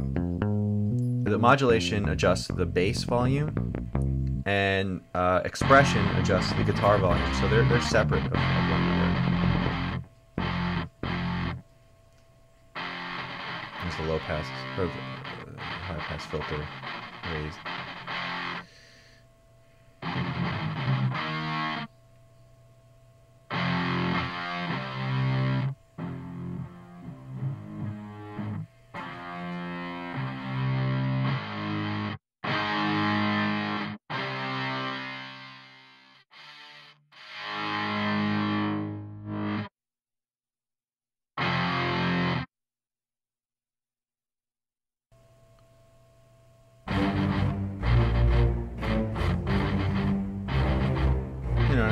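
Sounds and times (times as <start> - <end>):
distorted electric guitar chords: 0.0 - 11.7, 12.7 - 21.9, 23.5 - 39.7, 41.4 - 42.5, 46.8 - 51.9.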